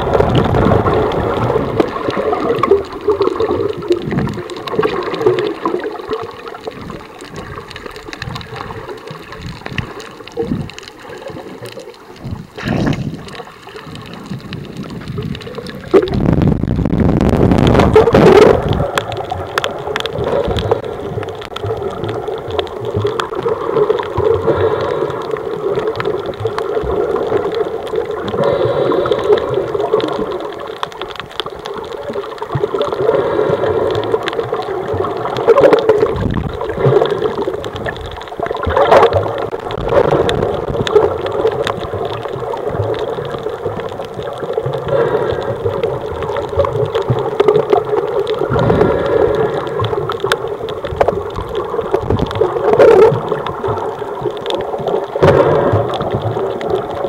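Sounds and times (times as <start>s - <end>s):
muffled underwater rushing water: 0.0s - 57.0s.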